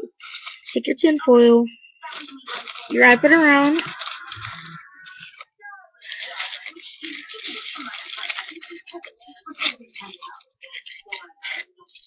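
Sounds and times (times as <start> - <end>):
aluminium foil crinkling: 0.2 - 0.8, 2.0 - 12.0.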